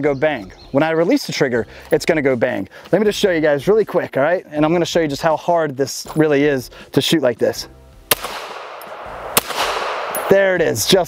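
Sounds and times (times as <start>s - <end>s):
pistol shots with echo: 8.1s - 10.8s.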